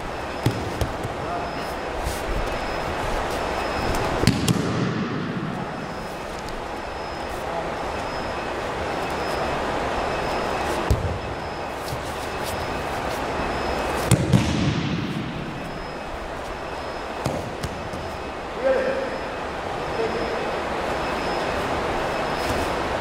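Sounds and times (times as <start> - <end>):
steady background hiss: 0.0 - 23.0.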